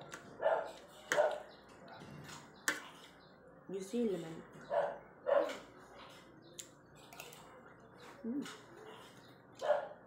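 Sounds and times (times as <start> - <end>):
dog barking: 0.4 - 1.4, 4.7 - 5.6, 9.6 - 10.0.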